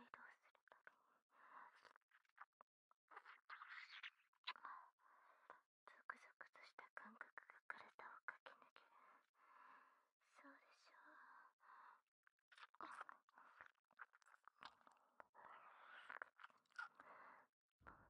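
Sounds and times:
faint whispering: 0:00.0 - 0:02.5, 0:03.1 - 0:09.4, 0:10.3 - 0:12.0, 0:12.6 - 0:18.0
wet mouth clicks: 0:16.0 - 0:17.0.

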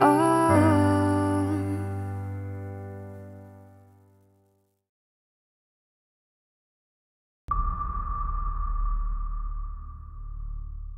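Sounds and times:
deep low rumble: 0:07.5 - 0:10.9
high ping-like tone: 0:07.5 - 0:10.9.

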